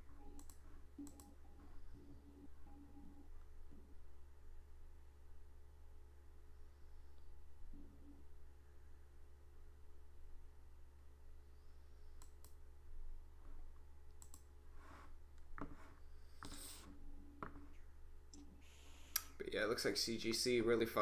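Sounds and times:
low electrical hum: 0.0s - 21.0s
faint computer clicks: 0.1s - 1.8s, 12.1s - 12.6s, 14.1s - 14.5s.

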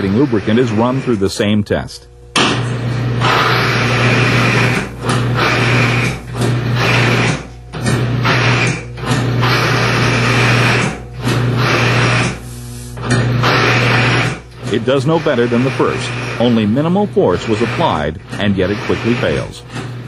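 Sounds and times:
bearing grinding harshly: 0.0s - 20.0s
machine motor hum: 0.0s - 20.0s.

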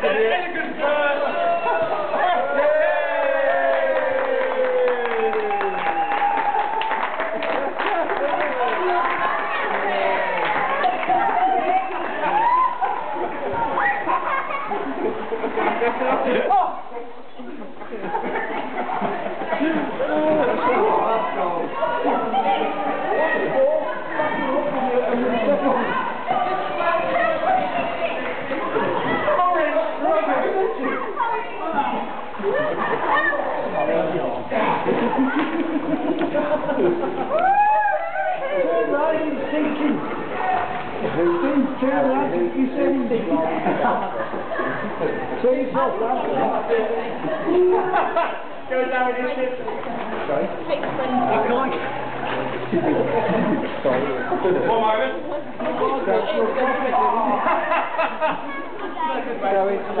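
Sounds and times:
people chattering: 0.0s - 60.0s.

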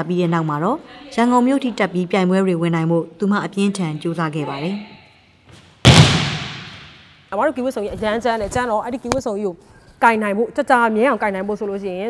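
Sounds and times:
bodies landing on judo mats: 5.5s - 7.0s.

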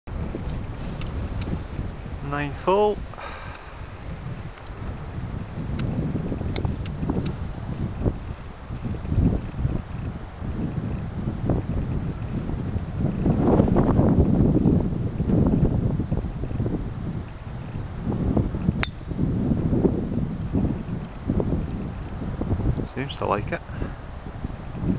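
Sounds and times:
wind buffeting microphone: 0.1s - 24.9s
golf driver striking ball: 18.8s - 19.3s.

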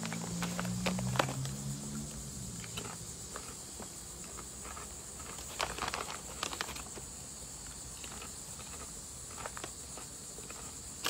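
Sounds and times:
plastic bag crinkling: 0.0s - 1.7s, 2.6s - 11.0s
crunching chips: 0.0s - 11.0s.

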